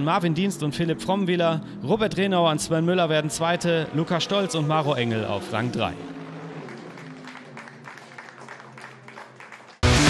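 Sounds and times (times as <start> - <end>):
people clapping: 5.6 - 10.0.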